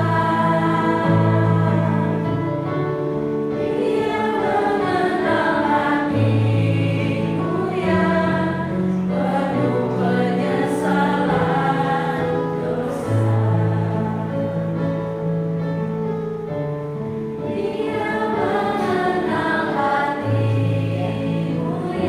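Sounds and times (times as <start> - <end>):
women singing a hymn: 0.0 - 2.8, 3.5 - 14.9, 17.4 - 22.0.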